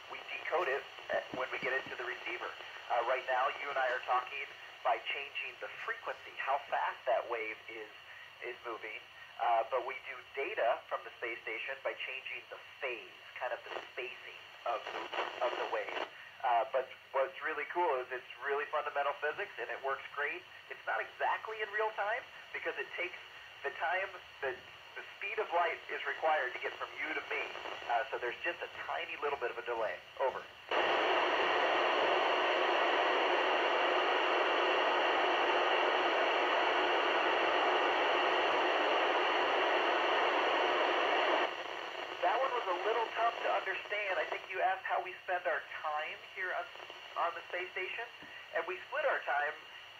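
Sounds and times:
man's voice over radio: 0:00.0 - 0:49.6.

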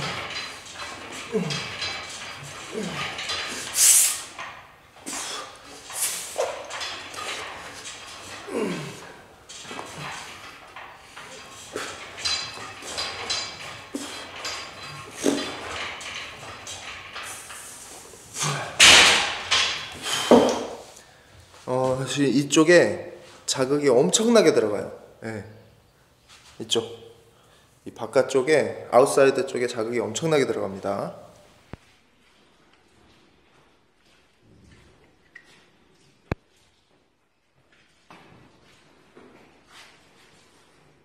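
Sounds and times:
gym equipment noise: 0:00.0 - 0:21.1
man grunting: 0:01.3 - 0:01.8, 0:02.6 - 0:03.2, 0:08.5 - 0:09.2.

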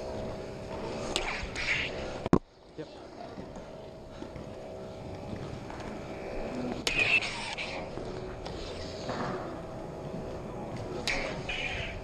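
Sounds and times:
lightsaber humming: 0:00.0 - 0:12.0.

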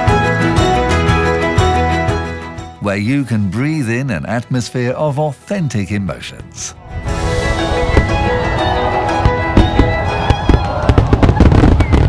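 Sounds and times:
fireworks bangs and crackles: 0:07.3 - 0:12.0.

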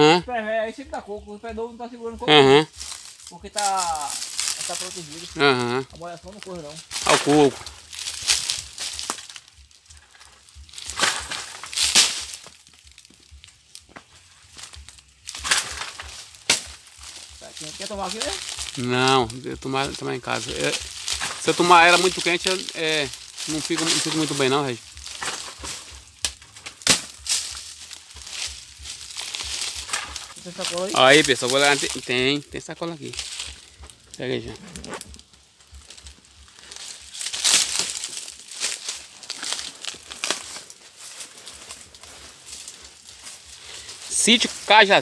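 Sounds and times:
dry palm fronds rustling: 0:00.0 - 0:45.0.

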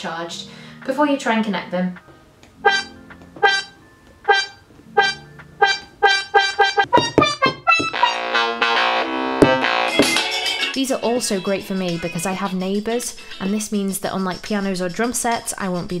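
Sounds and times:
electronic keyboard-like notes: 0:01.2 - 0:11.7.

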